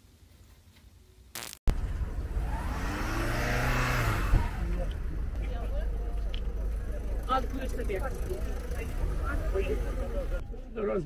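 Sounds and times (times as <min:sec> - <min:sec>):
car driving past: 0:01.7 - 0:10.4
steady low rumble: 0:01.7 - 0:10.8.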